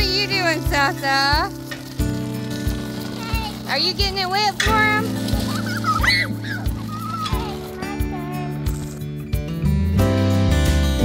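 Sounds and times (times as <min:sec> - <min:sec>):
background music with sustained tones: 0:00.0 - 0:11.0.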